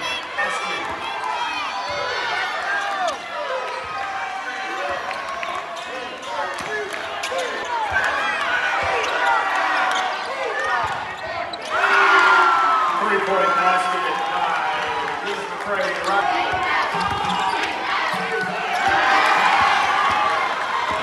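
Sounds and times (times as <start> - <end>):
indistinct shouting and voices: 0.0 - 21.0.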